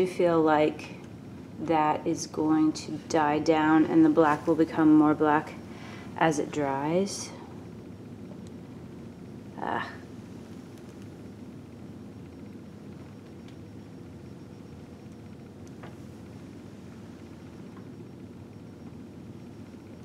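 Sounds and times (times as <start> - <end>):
potter's wheel humming: 0.0 - 20.0.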